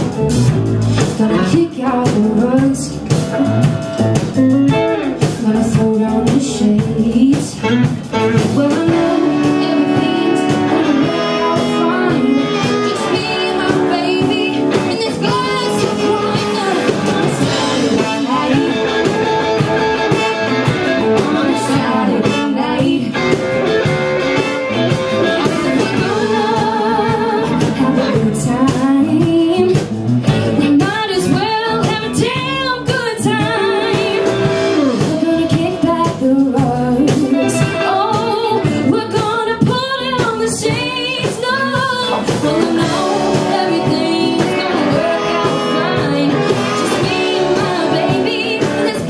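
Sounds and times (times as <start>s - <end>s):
blues band playing: 0.0s - 49.0s
woman singing lead vocals: 0.9s - 49.0s.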